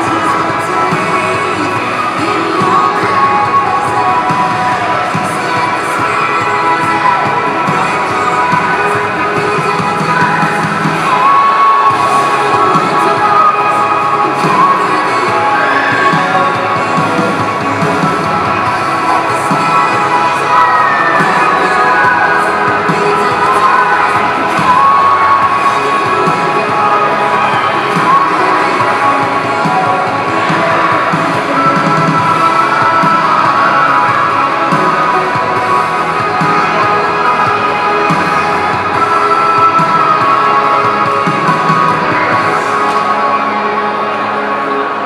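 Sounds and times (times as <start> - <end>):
band music through loudspeaker: 0.0 - 45.0
crowd cheering: 0.0 - 45.0.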